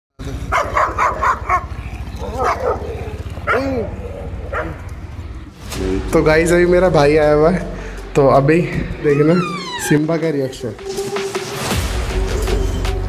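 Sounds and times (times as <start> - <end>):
dog barking: 0.5 - 4.8.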